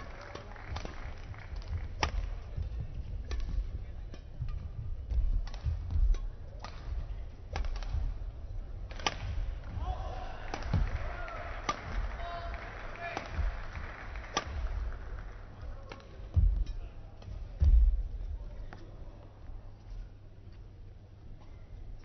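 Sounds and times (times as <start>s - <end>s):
racket striking shuttlecock: 3.3s - 8.3s, 8.9s - 12.2s, 13.1s - 14.9s.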